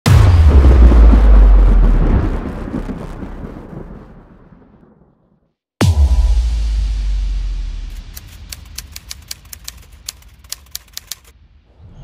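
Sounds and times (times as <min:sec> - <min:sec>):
typewriter keystroke clicks: 0:08.0 - 0:11.3.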